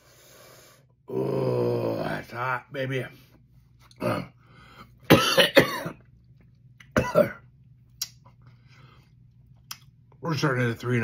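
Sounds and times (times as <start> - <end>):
man coughing hard: 5.1 - 6.0, 6.9 - 7.4.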